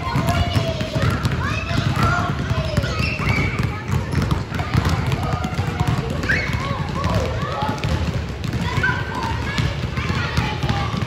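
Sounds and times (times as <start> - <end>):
basketballs bouncing on hardwood: 0.0 - 11.0
children's voices calling out: 0.0 - 11.0.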